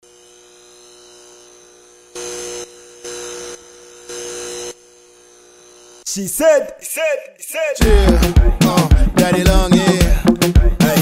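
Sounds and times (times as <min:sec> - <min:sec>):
neon sign electrical buzz: 0:00.0 - 0:06.1.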